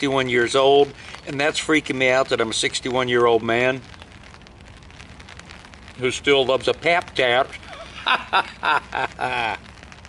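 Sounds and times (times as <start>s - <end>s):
rain on a tarp: 0.0s - 10.0s.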